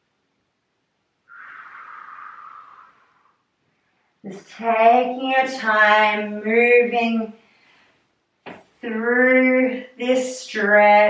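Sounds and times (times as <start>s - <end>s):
long breath out: 1.3s - 3.4s.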